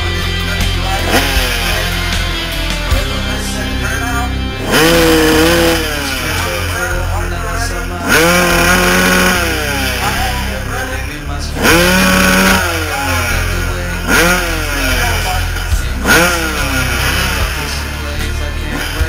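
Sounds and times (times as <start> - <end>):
dirt bike engine revving: 0.0 - 19.0.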